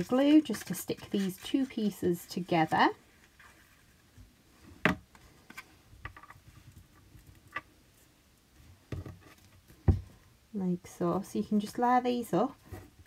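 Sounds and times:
paper rustling and scratching: 0:00.0 - 0:04.2.

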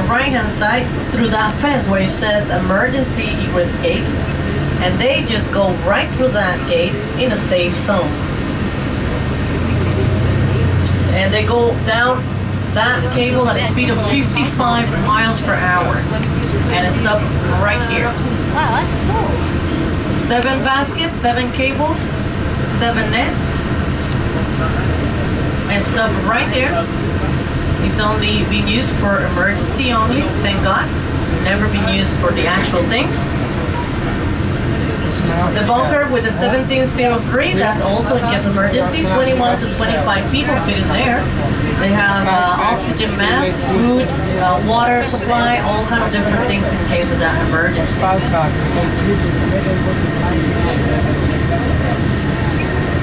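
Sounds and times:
bus engine hum: 0:00.0 - 0:53.0
road noise: 0:00.0 - 0:53.0.

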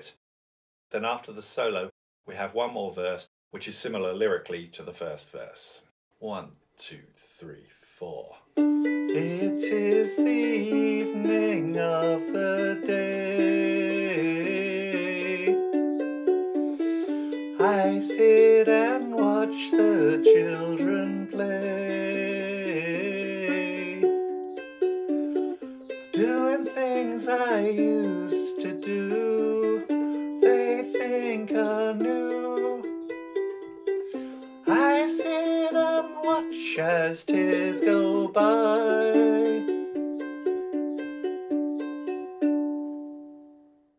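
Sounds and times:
ukulele fingerpicked: 0:08.6 - 0:43.5
man singing: 0:09.1 - 0:15.7, 0:17.0 - 0:24.2, 0:26.1 - 0:32.9, 0:34.2 - 0:39.8.

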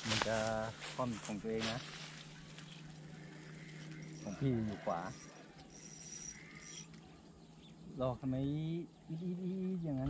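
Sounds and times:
high-pitched animal chirps: 0:03.6 - 0:07.0.

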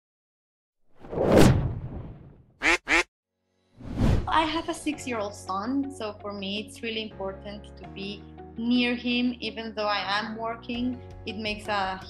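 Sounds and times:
duck quacks: 0:02.6 - 0:03.1
sound effect whoosh: 0:03.8 - 0:04.3.

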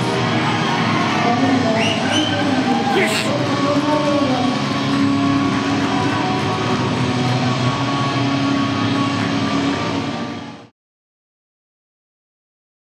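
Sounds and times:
sports hall crowd din: 0:00.0 - 0:10.7.

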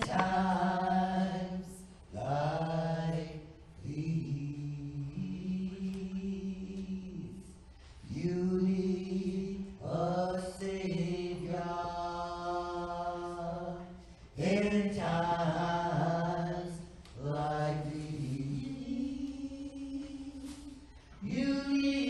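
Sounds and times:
singing with long held notes: 0:00.0 - 0:22.0.

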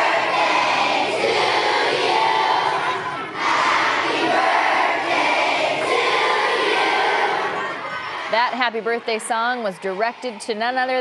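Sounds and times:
children cheering and shouting: 0:00.0 - 0:09.1.

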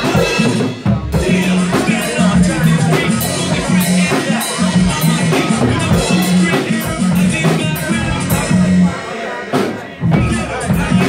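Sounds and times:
bass line: 0:00.0 - 0:11.0
guitar: 0:00.0 - 0:11.0
live band playing: 0:00.0 - 0:11.0.

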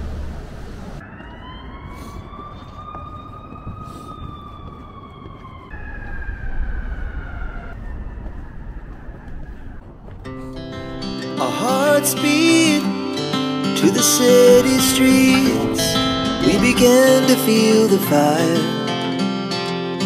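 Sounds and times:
low traffic rumble: 0:00.0 - 0:11.2, 0:13.8 - 0:19.4
emergency siren wailing: 0:00.1 - 0:11.2, 0:12.8 - 0:20.0
music: 0:10.3 - 0:20.0.

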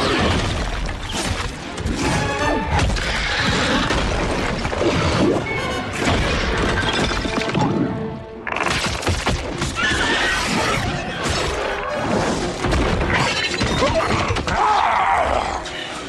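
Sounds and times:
dense orchestral music score: 0:00.0 - 0:16.0.

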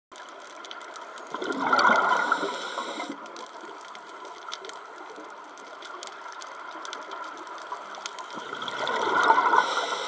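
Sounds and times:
faint ticks: 0:00.1 - 0:09.0
scuba exhalation bubbles: 0:01.3 - 0:03.2, 0:08.4 - 0:10.0
underwater hiss: 0:01.6 - 0:03.4, 0:08.7 - 0:10.0.

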